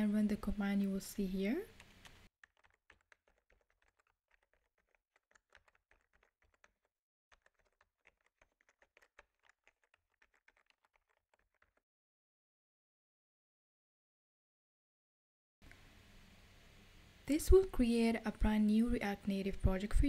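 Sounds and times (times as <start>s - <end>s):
faint keyboard typing: 1.6s - 11.8s.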